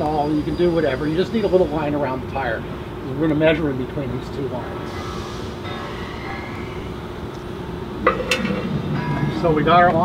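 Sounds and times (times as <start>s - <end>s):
faint wheel whine: 0.0s - 10.0s.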